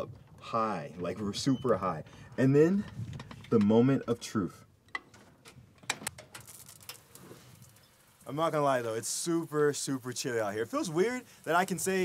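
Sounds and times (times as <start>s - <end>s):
light water pattering: 6.2s - 12.0s.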